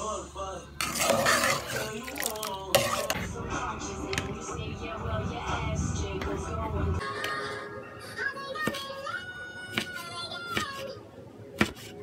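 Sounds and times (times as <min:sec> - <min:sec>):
metal ladle scraping metal pot: 0:00.8 - 0:03.3
background music with singing: 0:01.0 - 0:10.2.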